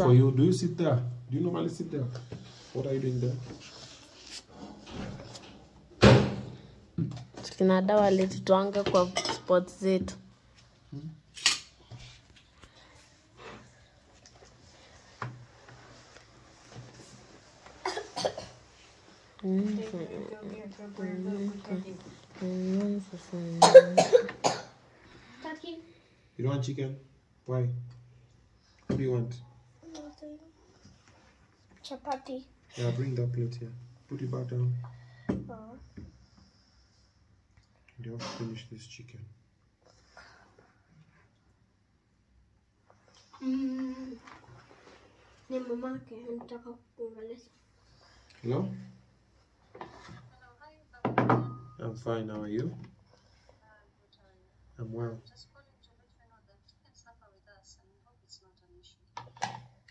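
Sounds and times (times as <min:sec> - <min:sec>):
dishes being handled: 0:08.9 - 0:09.5
child coughing: 0:17.8 - 0:18.6, 0:23.6 - 0:24.8.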